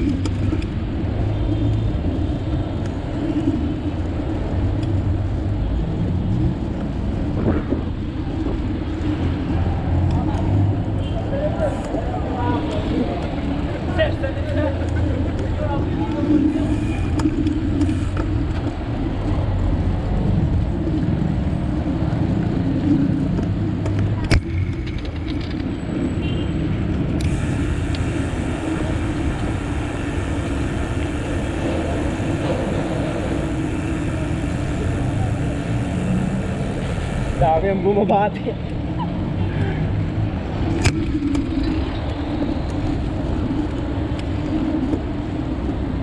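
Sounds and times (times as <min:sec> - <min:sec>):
car traffic: 0:00.0 - 0:46.0
wind rumble on microphone: 0:00.0 - 0:46.0.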